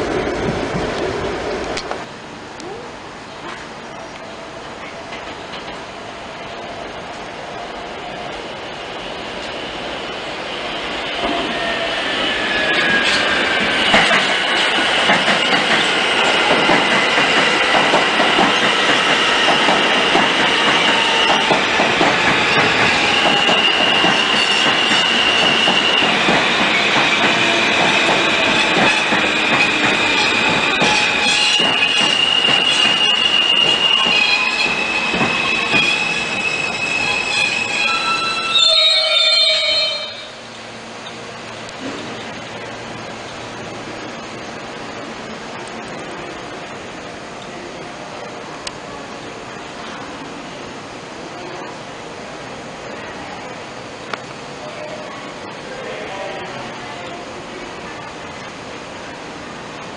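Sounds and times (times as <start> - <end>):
train rumble: 0.0 - 59.9
rail joint clicks: 0.4 - 2.7, 3.4 - 5.9, 12.7 - 38.4
train wheels squealing on rails: 10.6 - 41.2.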